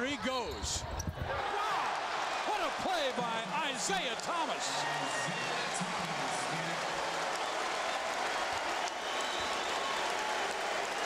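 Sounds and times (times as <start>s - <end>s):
crowd cheering and applauding: 1.3s - 11.0s.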